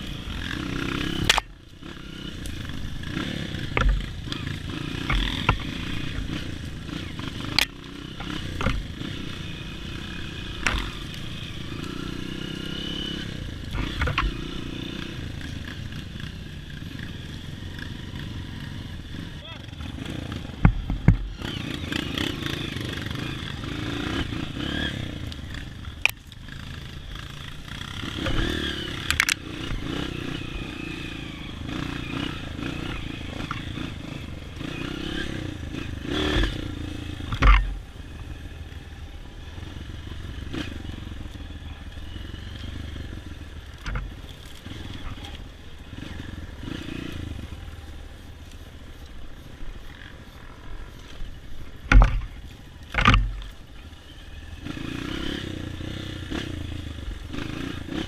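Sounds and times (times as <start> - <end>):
motorcycle engine revving: 0.0 - 58.0
sharp knocks and thuds: 3.7 - 4.1, 20.5 - 21.3, 37.3 - 37.8, 51.8 - 53.5.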